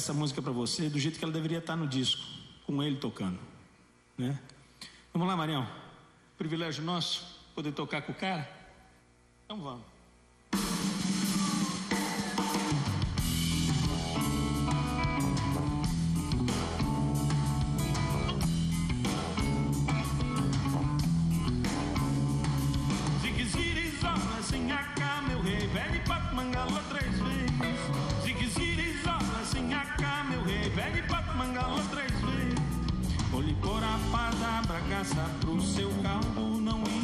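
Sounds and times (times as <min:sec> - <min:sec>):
live band playing: 0:10.6 - 0:37.0.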